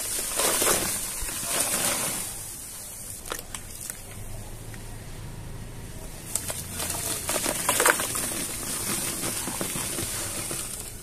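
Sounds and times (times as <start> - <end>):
powder pouring into water: 0.0 - 4.2, 6.2 - 11.0.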